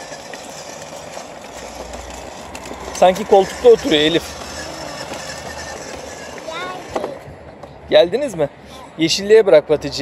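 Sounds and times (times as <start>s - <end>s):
ride-on scooter rolling on bricks: 0.0s - 7.8s.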